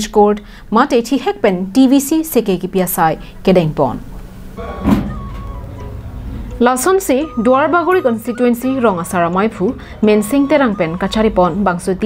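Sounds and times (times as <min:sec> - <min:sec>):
short held musical tones: 0:04.6 - 0:09.1.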